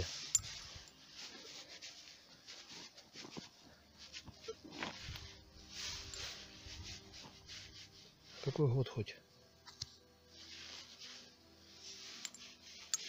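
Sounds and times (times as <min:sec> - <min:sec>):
hand scraping through dry soil: 0:00.0 - 0:08.8, 0:10.3 - 0:13.0.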